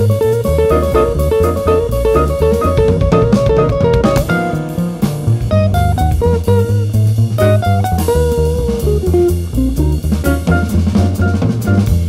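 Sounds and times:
bass: 0:00.0 - 0:12.0
drum kit: 0:00.0 - 0:12.0
jazz guitar solo: 0:00.0 - 0:12.0.

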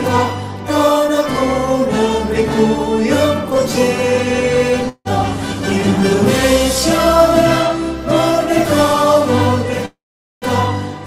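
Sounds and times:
mixed choir singing held notes: 0:00.0 - 0:11.0.

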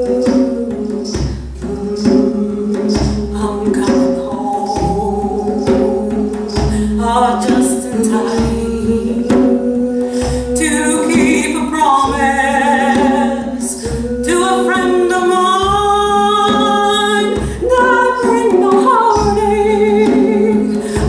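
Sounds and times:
hand drum beat: 0:00.0 - 0:21.0
woman singing slow melody: 0:00.0 - 0:21.0.

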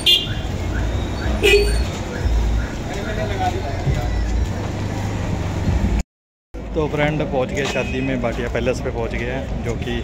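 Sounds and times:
street noise with low rumble: 0:00.0 - 0:10.0.

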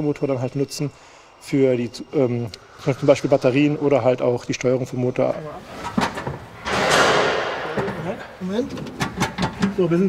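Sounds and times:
sharp knock: 0:06.7 - 0:08.2.

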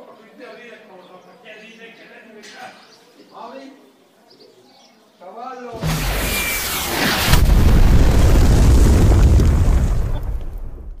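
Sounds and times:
loud rushing noise: 0:05.8 - 0:09.5
explosion with deep rumble: 0:05.8 - 0:11.0.

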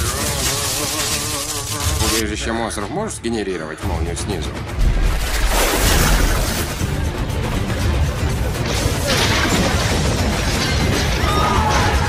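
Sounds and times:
electric crackle and buzz: 0:00.0 - 0:02.4.

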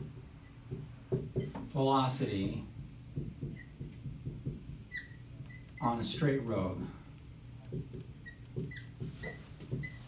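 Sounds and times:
marker writing on whiteboard: 0:00.0 - 0:06.0, 0:06.6 - 0:10.0
marker squeak: 0:03.4 - 0:03.8, 0:04.8 - 0:06.0, 0:08.0 - 0:10.0.

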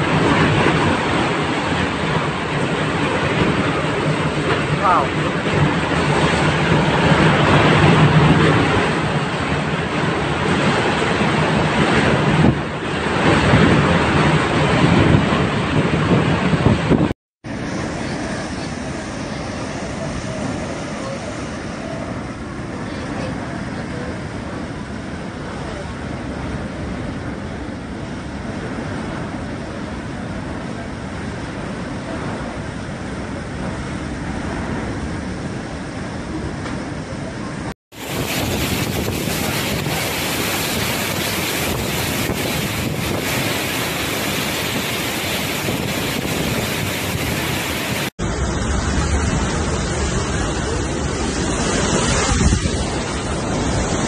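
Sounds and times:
driving rain: 0:00.0 - 0:54.0
strong gusting wind: 0:00.0 - 0:54.0.

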